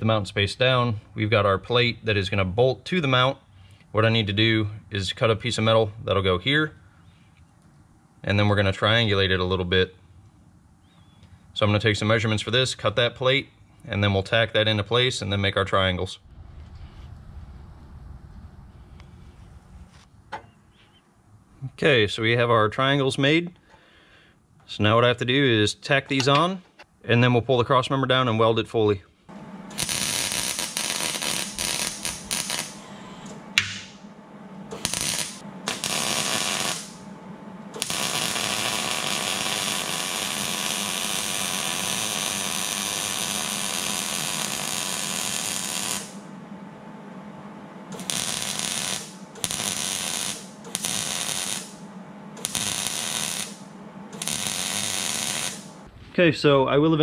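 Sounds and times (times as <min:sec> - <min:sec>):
low steady hum: 0:00.0 - 0:40.6, 0:44.5 - 0:57.0
welder crackling hiss: 0:29.7 - 0:32.8, 0:34.7 - 0:37.0, 0:37.8 - 0:46.2, 0:47.9 - 0:51.8, 0:52.4 - 0:55.8.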